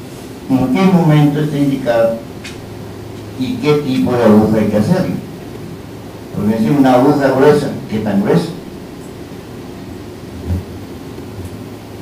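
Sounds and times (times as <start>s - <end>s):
sound system hum: 0.0s - 12.0s.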